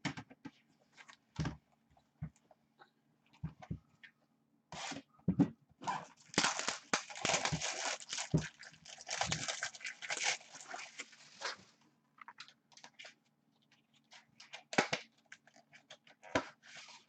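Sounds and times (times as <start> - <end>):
plastic wrap crinkling and tearing: 5.9 - 11.6.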